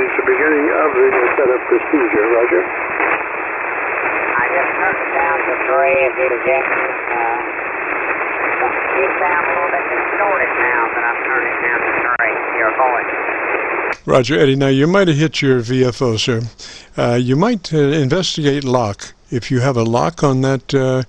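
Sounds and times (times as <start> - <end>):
garbled radio voice: 0.0 - 2.7, 4.3 - 7.4, 14.0 - 21.0
radio band hiss: 0.0 - 21.0.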